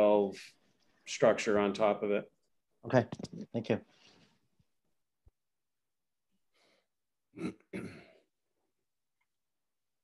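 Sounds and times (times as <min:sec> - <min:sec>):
person clearing throat: 0:07.3 - 0:08.3.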